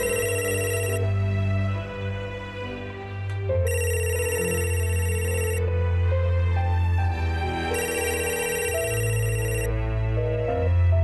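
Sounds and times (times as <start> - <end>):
electronic telephone ringing: 0.0 - 1.0, 3.7 - 5.6, 7.7 - 9.7
soft background music: 0.0 - 11.0.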